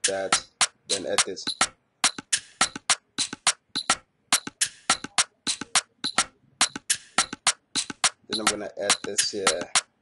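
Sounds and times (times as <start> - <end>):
syncopated percussion loop: 0.0 - 10.0.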